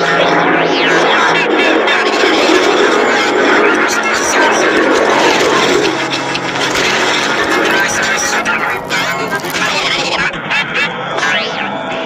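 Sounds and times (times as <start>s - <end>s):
overlapping voices and music din: 0.0s - 12.0s.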